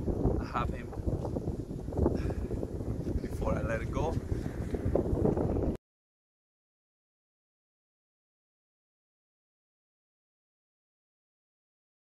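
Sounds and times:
wind buffeting microphone: 0.0s - 5.8s.

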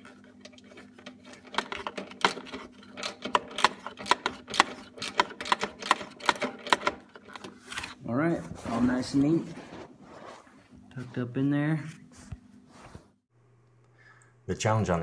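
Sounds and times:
plastic parts clicking and tapping: 0.4s - 7.8s.

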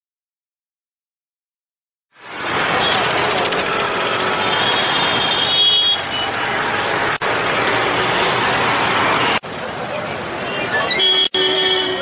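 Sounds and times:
road traffic: 2.1s - 12.0s
urban hubbub: 2.1s - 12.0s.

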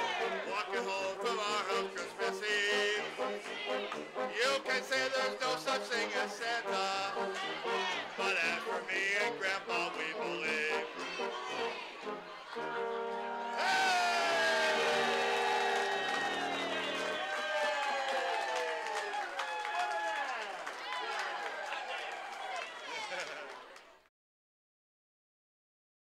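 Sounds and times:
crowd cheering and applauding: 0.0s - 2.2s, 2.9s - 24.0s
tuba band holding a chord: 0.0s - 17.2s.

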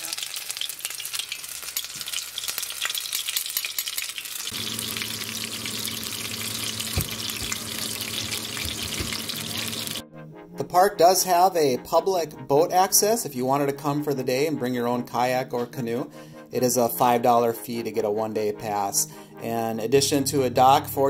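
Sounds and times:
fish frying in hot oil: 0.0s - 10.0s.

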